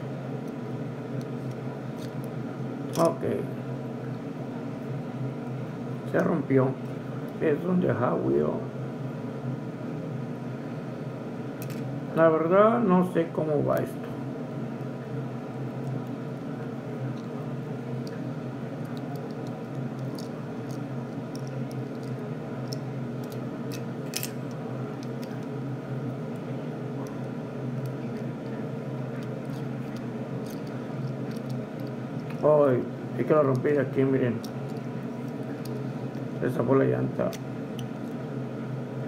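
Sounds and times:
steady background hum: 0.0 - 39.0.

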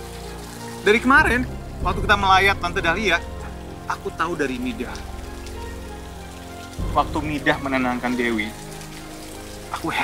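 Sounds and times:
soft music with held chords: 0.0 - 10.0
man's voice: 0.9 - 5.0.

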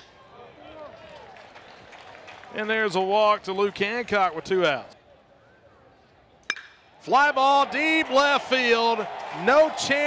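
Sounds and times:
faint crowd murmur: 4.9 - 6.5.

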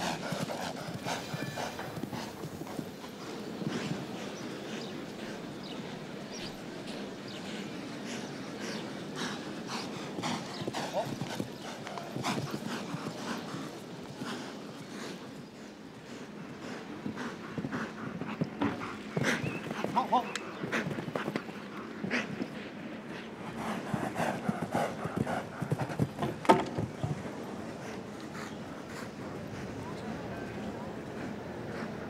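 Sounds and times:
horse hooves cantering on grass: 0.0 - 7.2, 8.6 - 31.9.

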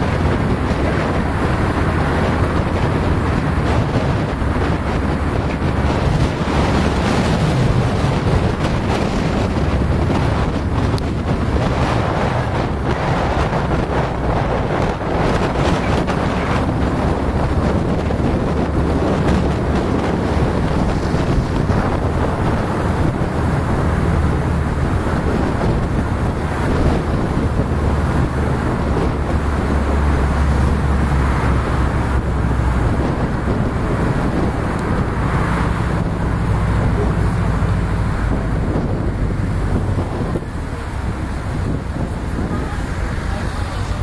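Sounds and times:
car engine and tyre drone: 0.0 - 44.0
deep low rumble: 0.0 - 44.0.

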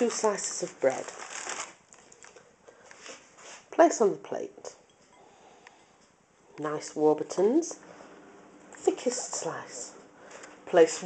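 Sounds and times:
plastic bag crinkling: 0.0 - 3.1.

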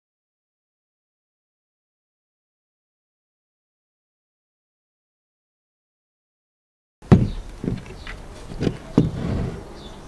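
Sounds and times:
air rifle knocking on wooden table: 7.1 - 8.0
short rub: 8.0 - 9.8.

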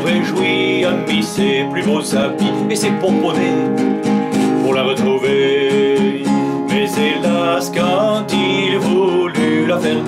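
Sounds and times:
classical guitar strumming chords: 0.0 - 10.0
man singing: 0.0 - 10.0.

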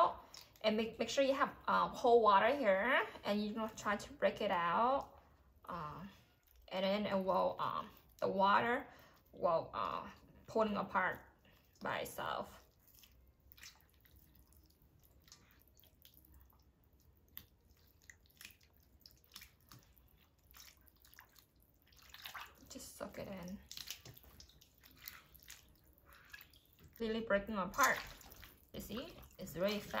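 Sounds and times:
small water splashes and drips: 0.1 - 1.0, 10.1 - 30.0.

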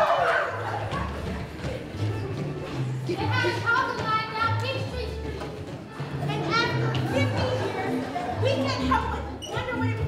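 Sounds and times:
young voices shouting and whooping: 0.0 - 1.2.

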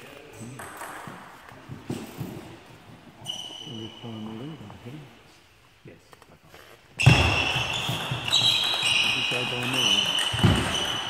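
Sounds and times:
voices talking in a hall: 0.0 - 11.0.

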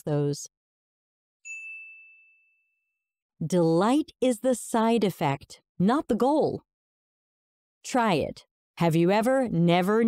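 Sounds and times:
high bell-like ding: 1.5 - 2.9.

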